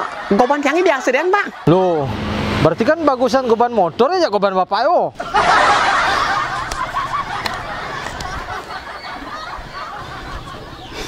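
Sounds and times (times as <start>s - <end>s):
burst of laughter: 5.2s - 11.0s.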